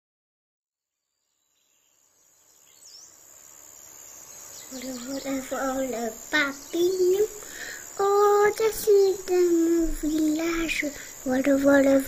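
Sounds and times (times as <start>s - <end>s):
insects chirring: 1.1s - 12.0s
bird chirp: 1.2s - 9.4s.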